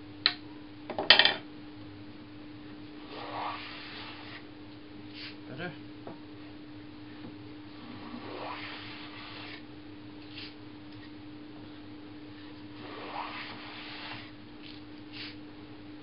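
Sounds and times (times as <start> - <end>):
plane scraping on draw back: 3.1 - 4.4, 7.8 - 9.6, 12.8 - 14.4.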